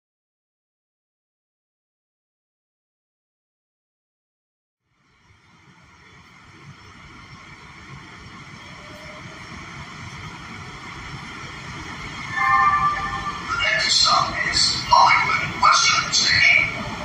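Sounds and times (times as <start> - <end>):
subway car running rumble: 4.8 - 17.0
high-pitched propulsion whine: 6.9 - 17.0.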